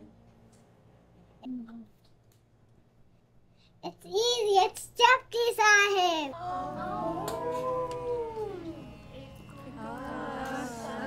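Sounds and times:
long held musical note: 6.4s - 10.8s.

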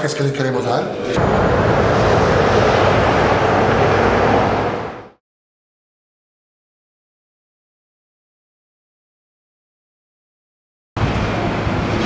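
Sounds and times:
loud steady rushing noise: 0.0s - 5.2s, 11.0s - 12.0s.

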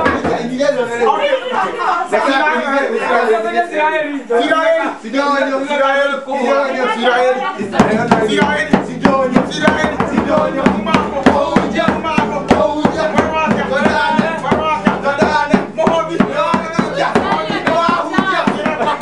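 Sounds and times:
voices singing: 0.0s - 19.0s
hand drum beating: 7.7s - 19.0s.

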